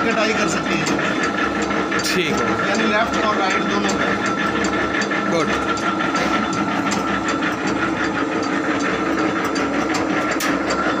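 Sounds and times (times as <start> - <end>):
electric motor humming: 0.0 - 11.0.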